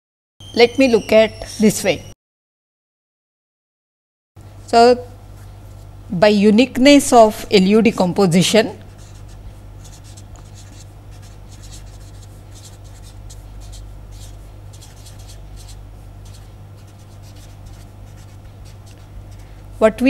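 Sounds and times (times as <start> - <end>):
low electrical hum: 4.4 - 20.0
marker pen scratching on paper: 9.0 - 19.5.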